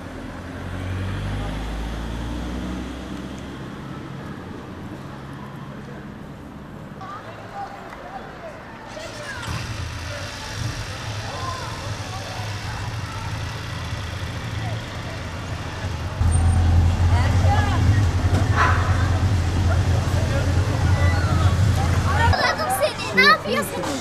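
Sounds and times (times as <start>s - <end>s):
faint voices talking: 3.5s - 24.0s
vehicle engine humming: 9.0s - 24.0s.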